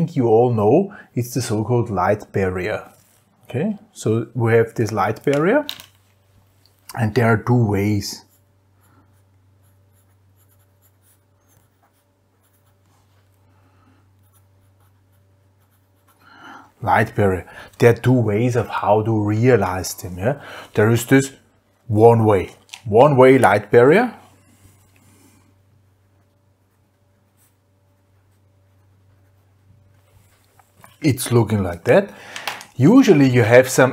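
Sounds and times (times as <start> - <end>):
low room hum: 0.0 - 33.9
pen scratching on paper: 8.2 - 12.9, 14.2 - 16.2.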